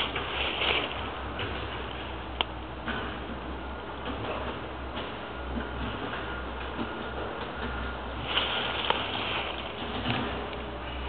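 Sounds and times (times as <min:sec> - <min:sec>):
steady rushing hiss: 0:00.0 - 0:04.0, 0:08.0 - 0:11.0.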